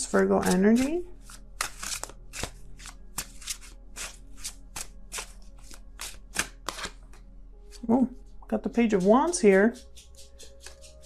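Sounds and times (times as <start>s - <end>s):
cards being shuffled: 0.0s - 7.9s, 9.0s - 11.0s.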